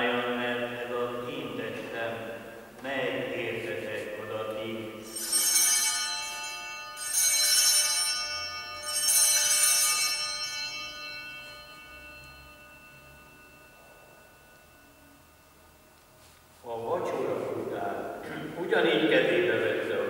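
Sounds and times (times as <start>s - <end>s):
small bells ringing: 4.7s - 16.4s.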